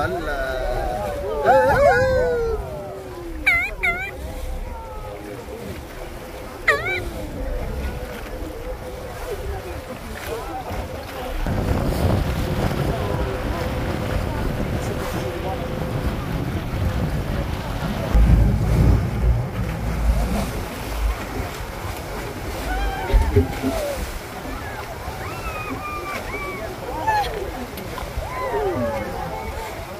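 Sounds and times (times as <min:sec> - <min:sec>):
boat hull churning water: 0:00.0 - 0:29.9
wind buffeting microphone: 0:00.0 - 0:29.9.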